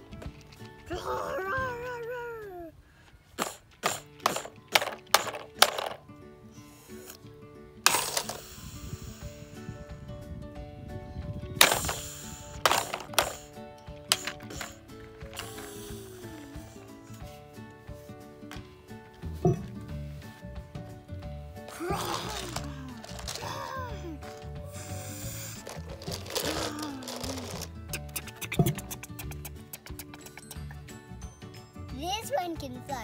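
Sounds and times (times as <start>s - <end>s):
plastic toys clacking on stone: 0.0s - 0.9s, 3.4s - 6.0s, 7.9s - 8.6s, 11.6s - 16.8s, 21.7s - 30.8s
background music: 0.0s - 33.0s.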